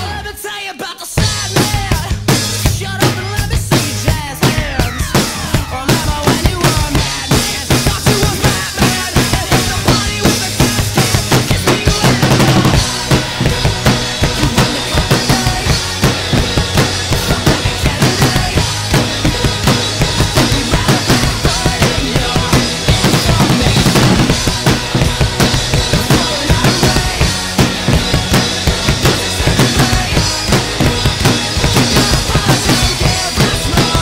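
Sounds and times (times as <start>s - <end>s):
rock band playing: 0.0s - 34.0s
snare drum: 3.8s - 34.0s.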